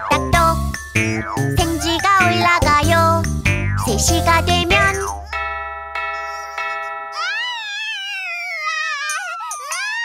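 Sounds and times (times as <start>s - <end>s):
wavering cartoon cry: 6.2s - 10.0s.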